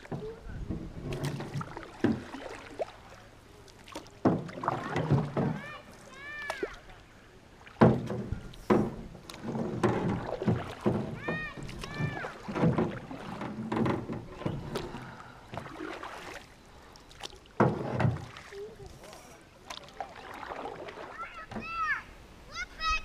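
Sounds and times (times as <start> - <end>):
paddles knocking on canoe hull: 0.0 - 2.5, 4.2 - 5.8, 7.8 - 16.1
paddles splashing in water: 0.0 - 22.9.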